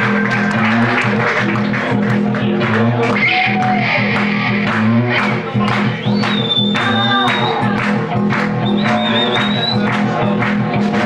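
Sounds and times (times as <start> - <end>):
blues-rock band playing loud: 0.0 - 11.0.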